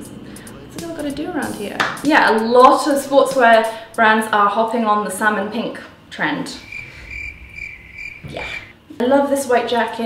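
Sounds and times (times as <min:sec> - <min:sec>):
cricket chirping: 0:06.6 - 0:08.8.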